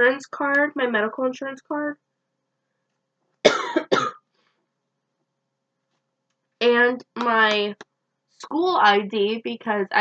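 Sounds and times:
woman coughing: 3.5 - 4.2.

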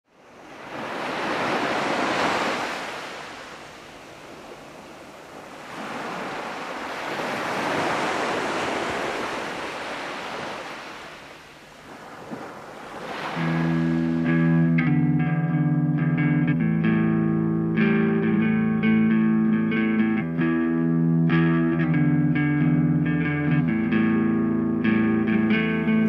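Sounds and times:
sea waves washing ashore: 0.1 - 15.1
electric guitar and bass: 13.4 - 26.0.

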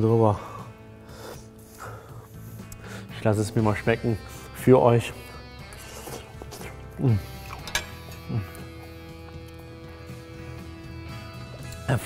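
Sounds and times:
soft music of held chords: 0.0 - 12.0
man humming while eating: 8.2 - 9.0.

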